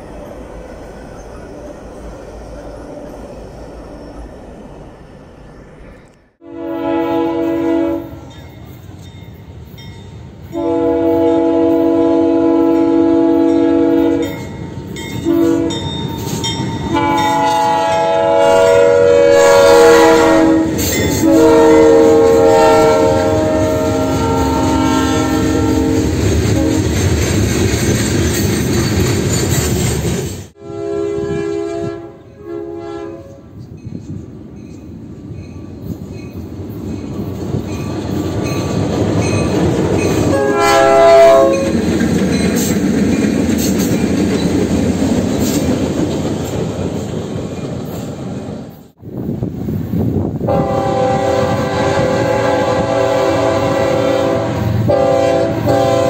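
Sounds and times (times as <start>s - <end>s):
train rumble: 0.0s - 56.0s
locomotive air horn blasts: 6.4s - 8.3s, 10.6s - 14.3s, 15.2s - 15.8s, 16.9s - 26.9s, 30.6s - 33.5s, 40.3s - 41.7s, 50.4s - 56.0s
train wheel clatter: 24.0s - 30.6s, 33.6s - 40.6s, 41.3s - 49.0s.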